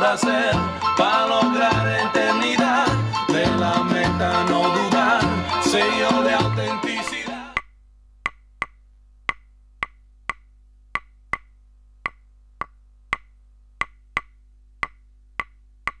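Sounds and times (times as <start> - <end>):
sharp wood-block-like clicks: 7.6 - 16.0.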